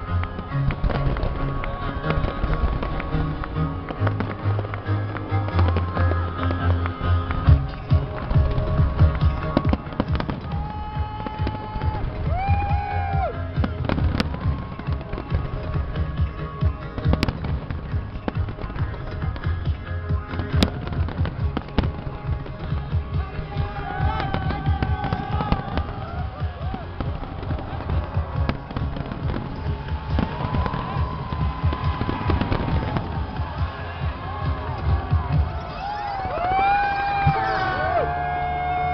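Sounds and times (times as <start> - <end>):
deep fireworks booms: 0.0 - 38.9
fireworks bangs and crackles: 0.0 - 38.9
music playing: 0.0 - 38.9.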